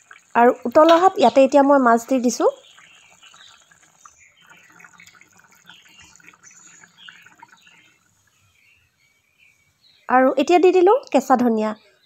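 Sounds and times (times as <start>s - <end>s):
curry boiling with bubbling pops: 0.0s - 9.0s.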